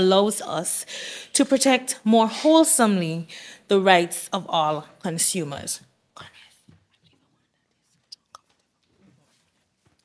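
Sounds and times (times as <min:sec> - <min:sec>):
person whispering into microphone: 0:06.2 - 0:09.5.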